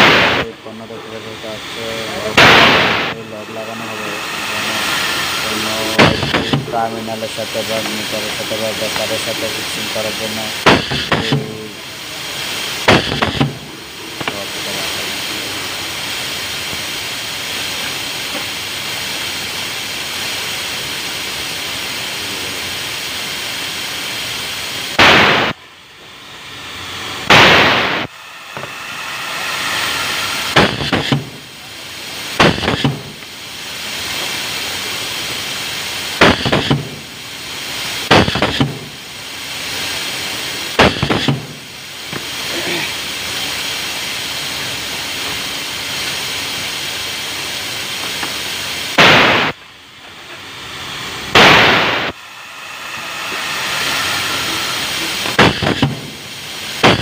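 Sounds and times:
compressed air blasts: 0:00.0 - 0:11.6, 0:12.3 - 0:14.9, 0:22.8 - 0:47.2, 0:47.8 - 0:49.6, 0:50.4 - 0:57.0
workshop hum: 0:00.0 - 0:57.0.

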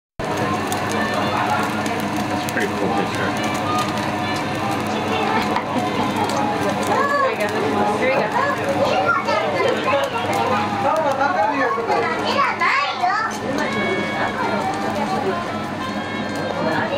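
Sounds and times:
meat sizzling on a grill: 0:00.2 - 0:16.9
voices talking: 0:00.3 - 0:16.9.

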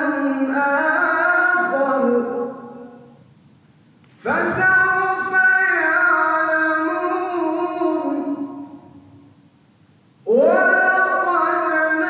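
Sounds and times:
man reciting in melodic chant: 0:00.0 - 0:03.2, 0:04.1 - 0:09.3, 0:10.2 - 0:12.0.

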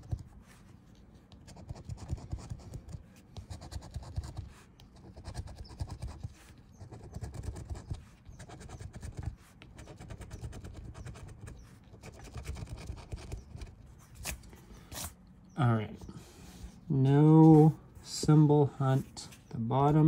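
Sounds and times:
lottery ticket being scratched: 0:03.5 - 0:15.2.

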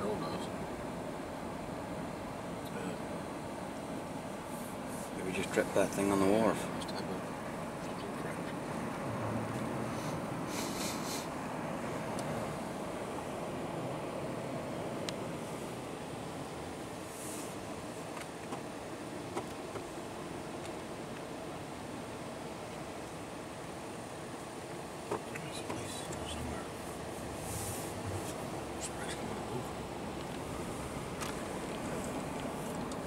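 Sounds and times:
strong wind rushing around car: 0:26.3 - 0:33.0.

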